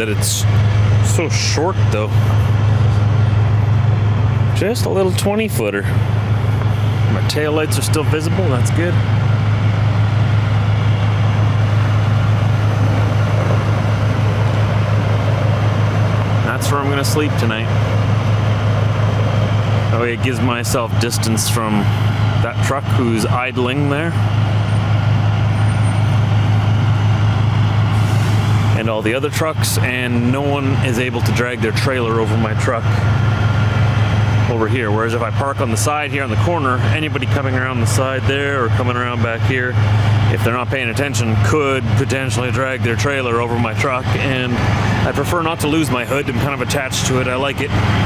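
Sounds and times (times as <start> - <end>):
diesel engine idling: 0.0 - 48.0.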